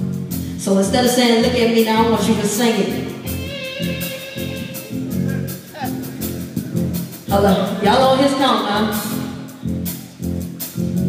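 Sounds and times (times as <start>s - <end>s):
church band playing instrumental: 0.0s - 11.0s
low bass notes and drum hits: 0.0s - 11.0s.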